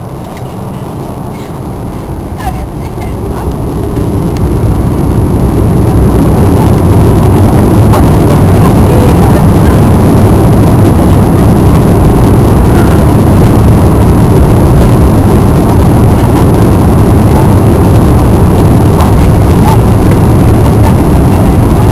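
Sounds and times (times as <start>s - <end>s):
jet engines spooling up: 0.0s - 21.9s
take-off roll rumble: 0.0s - 21.9s.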